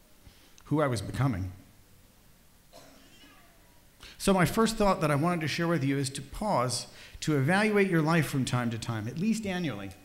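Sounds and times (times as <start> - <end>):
faint wavering cry: 3.1 - 3.8.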